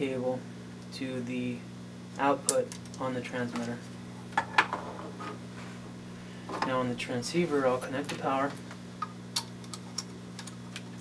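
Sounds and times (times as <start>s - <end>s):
low hum: 3.8s - 9.4s.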